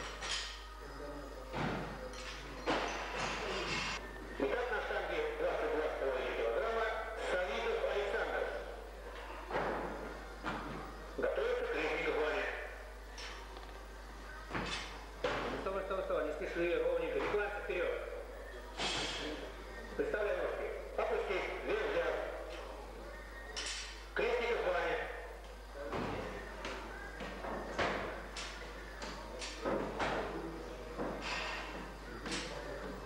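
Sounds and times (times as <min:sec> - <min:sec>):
people talking in background: 0:00.0 - 0:33.0.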